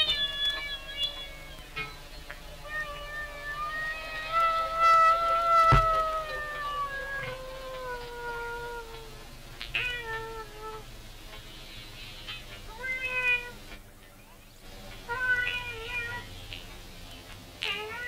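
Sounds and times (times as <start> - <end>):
meow-like wailing calls: 0.0 - 1.9, 2.5 - 10.8, 12.7 - 13.7, 15.1 - 16.3, 17.6 - 18.0.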